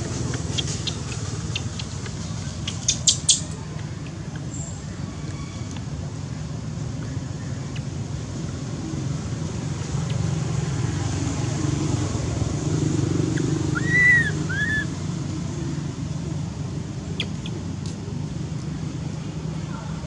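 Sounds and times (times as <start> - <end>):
low outdoor rumble: 0.0 - 20.0
faint sharp clicks: 0.3 - 4.5
whistle-like animal calls: 13.7 - 14.9.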